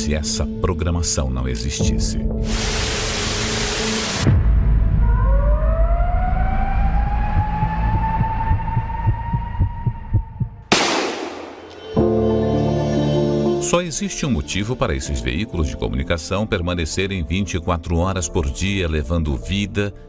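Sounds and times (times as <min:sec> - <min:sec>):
burst of hiss: 0:02.5 - 0:04.3
low pulse: 0:04.5 - 0:12.1
rising tone: 0:04.9 - 0:10.4
music with held chords: 0:11.7 - 0:13.8.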